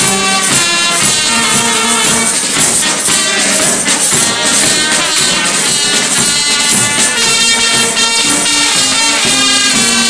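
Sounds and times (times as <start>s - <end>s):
bass drum: 0.0s - 10.0s
snare drum: 0.0s - 10.0s
trumpets and horns: 0.0s - 10.0s.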